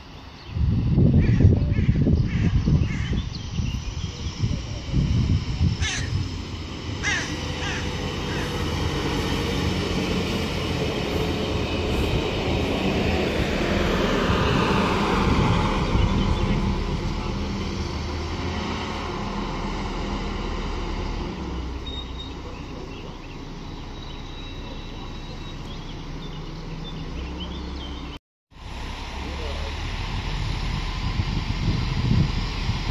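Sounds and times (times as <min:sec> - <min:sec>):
diesel train passing: 0:00.0 - 0:32.9
falling whine: 0:03.5 - 0:32.9.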